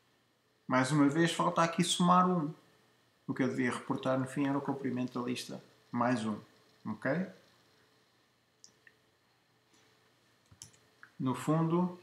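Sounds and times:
computer keys clicking: 10.4s - 10.9s.

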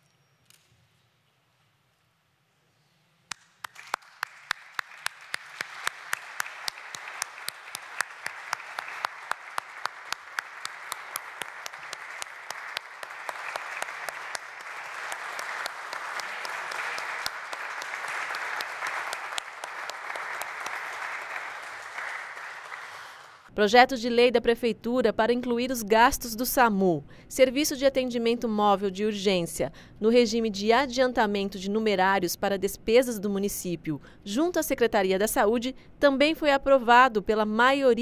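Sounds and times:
audience applauding: 3.3s - 23.5s
loud claps close by: 3.3s - 23.5s.

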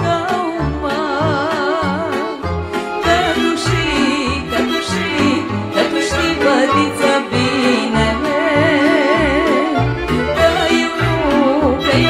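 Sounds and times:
accordion playing quick runs: 2.0s - 12.0s.

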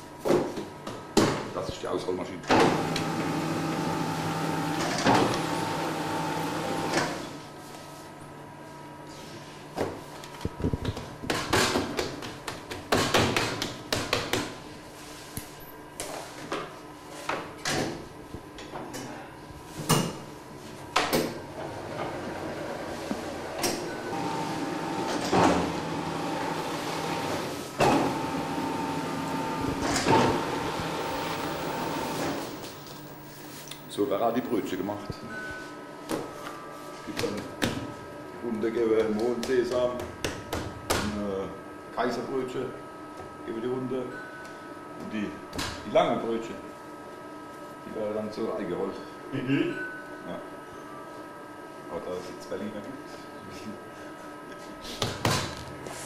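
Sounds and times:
bakery machine humming: 2.5s - 13.5s, 19.1s - 38.8s
dough sheeter motor running: 2.6s - 8.0s, 21.6s - 35.0s.

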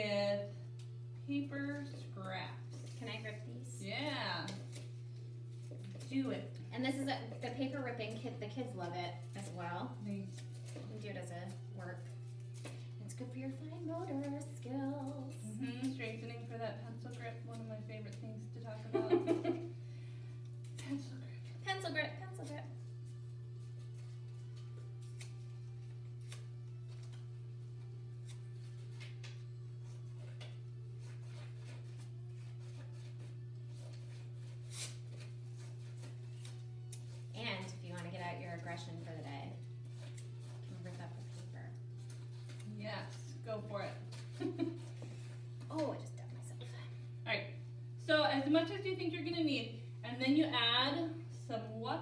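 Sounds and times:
paper tearing by hand: 30.7s - 37.3s.

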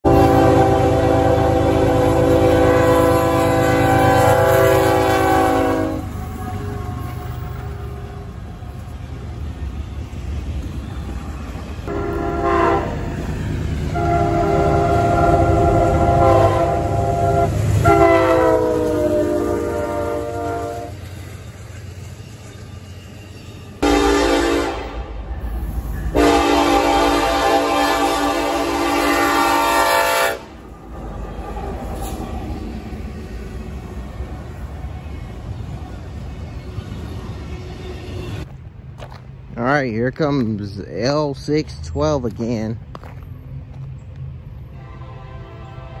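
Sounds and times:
locomotive air horns blowing: 0.0s - 8.4s, 11.9s - 13.2s, 13.9s - 21.0s, 23.8s - 25.2s, 26.1s - 30.6s, 44.7s - 46.0s
train rumbling past: 0.0s - 46.0s.

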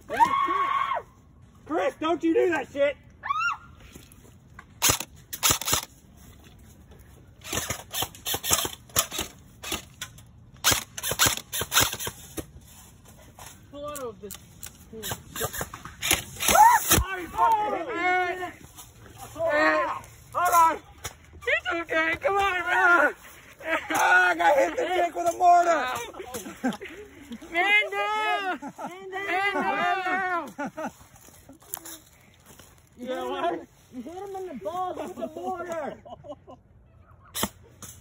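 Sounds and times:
people shouting: 0.0s - 1.1s, 16.4s - 18.6s, 19.2s - 26.2s, 27.5s - 30.5s
airsoft guns firing: 4.8s - 5.9s, 10.6s - 12.2s.

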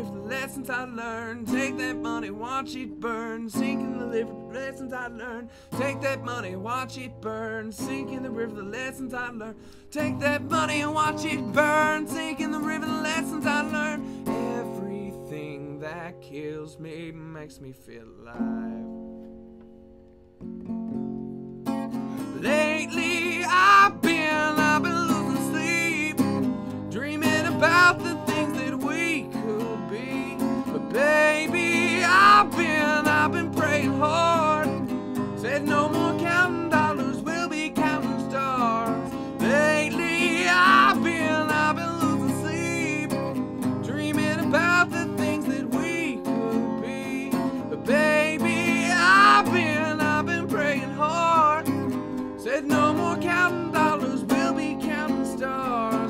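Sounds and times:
man singing: 0.0s - 19.0s, 22.1s - 56.0s
strummed acoustic guitar: 0.0s - 56.0s.

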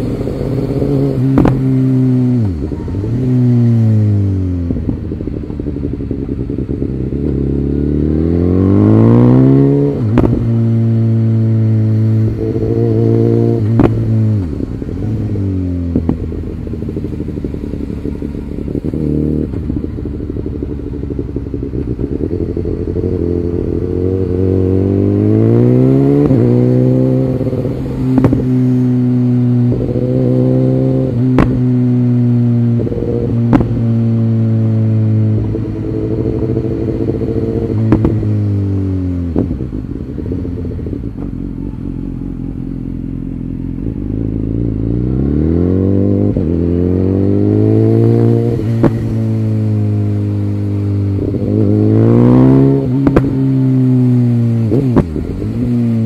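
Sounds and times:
motorcycle engine: 0.0s - 56.0s.

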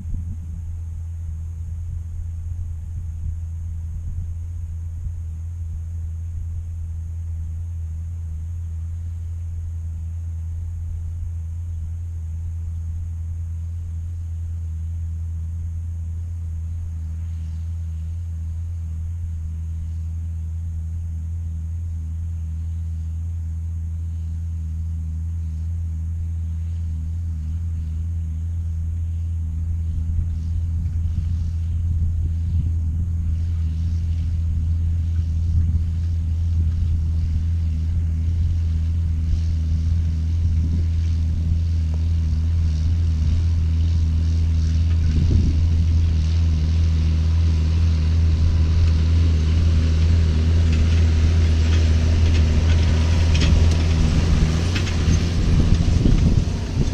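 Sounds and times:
tractor diesel engine droning: 0.0s - 56.9s.

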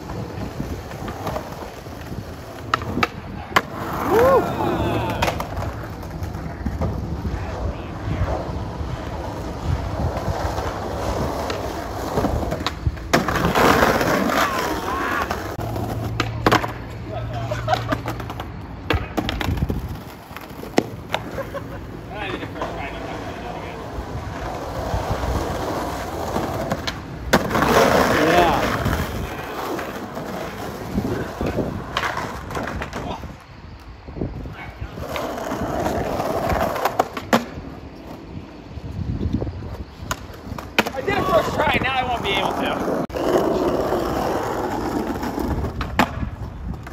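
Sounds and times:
skateboard clacking on ground: 0.0s - 33.9s, 34.5s - 38.3s, 39.7s - 46.9s
skateboard wheels rolling on asphalt: 0.0s - 46.9s.

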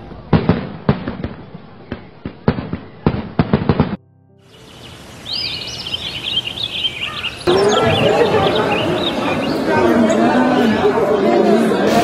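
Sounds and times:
indistinct chatter of people: 7.4s - 12.0s.

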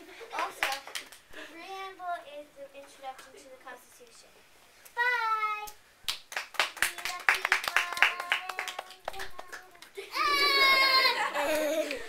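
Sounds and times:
small group clapping: 0.3s - 1.3s, 5.6s - 12.0s
child's voice: 1.4s - 4.3s, 5.0s - 5.8s, 6.8s - 11.2s.

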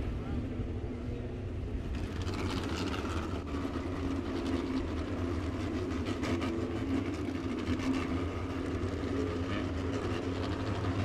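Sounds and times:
race car engines at low revs: 0.0s - 11.0s.

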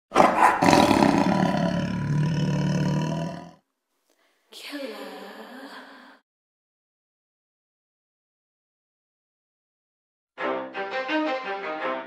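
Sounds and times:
lion roaring: 0.1s - 3.6s.

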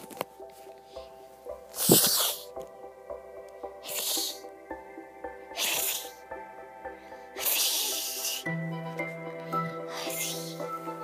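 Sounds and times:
music with held notes: 0.0s - 11.0s.

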